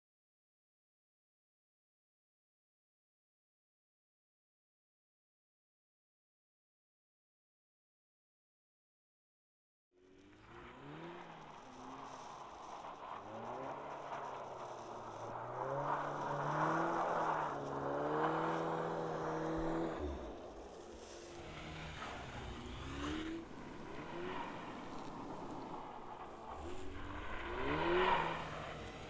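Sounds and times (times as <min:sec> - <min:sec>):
car engine revving: 0:10.0 - 0:29.0
tyres churning through snow: 0:10.0 - 0:29.0.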